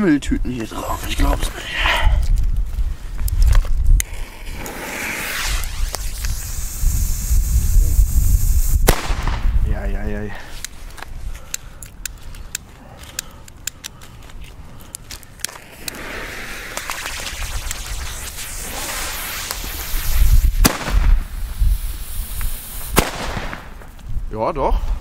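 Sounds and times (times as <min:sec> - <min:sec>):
firecracker cracks: 0:03.9 - 0:06.9, 0:08.2 - 0:09.6, 0:14.9 - 0:24.0
firework hiss: 0:04.0 - 0:09.7, 0:15.4 - 0:23.8
sharp firecracker bangs: 0:08.8 - 0:09.6, 0:18.3 - 0:21.3, 0:22.8 - 0:23.8.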